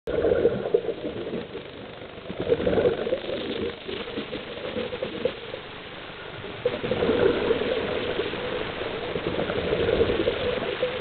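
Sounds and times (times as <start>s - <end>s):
underwater bubbles gurgling: 0.1s - 11.0s.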